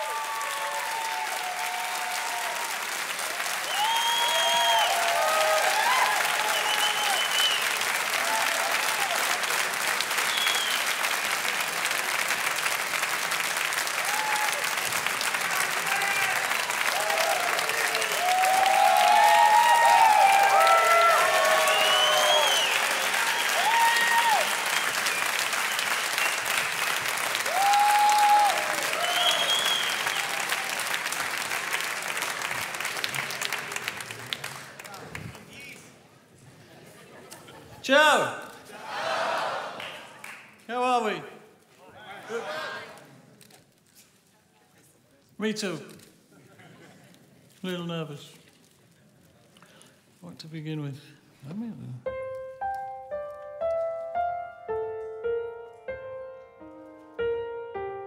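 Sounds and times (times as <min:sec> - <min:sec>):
audience applauding: 0:00.0 - 0:36.0, 0:38.1 - 0:41.2
shouts and whistles: 0:03.6 - 0:07.7, 0:18.1 - 0:26.4, 0:27.6 - 0:30.5.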